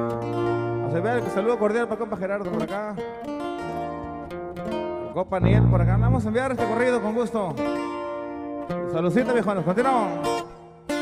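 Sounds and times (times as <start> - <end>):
acoustic guitars playing chords: 0.0 - 11.0.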